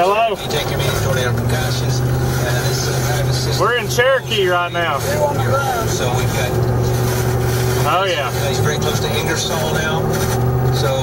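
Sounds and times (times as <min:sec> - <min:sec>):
car engine drone from inside: 0:00.0 - 0:11.0.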